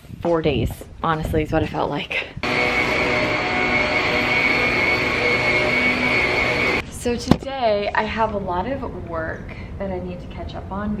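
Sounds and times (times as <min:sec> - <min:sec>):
vacuum cleaner motor whine: 0:02.4 - 0:06.8.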